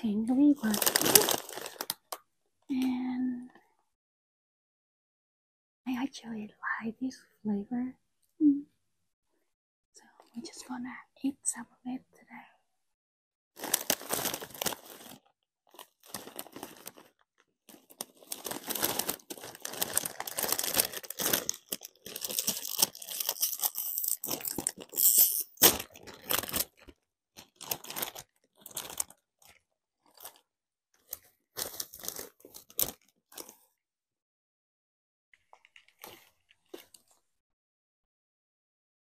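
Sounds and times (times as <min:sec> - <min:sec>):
chip bag crinkling: 0:00.5 - 0:02.2, 0:13.6 - 0:30.4, 0:31.0 - 0:33.6, 0:35.5 - 0:37.2
chips crunching: 0:17.7 - 0:30.3.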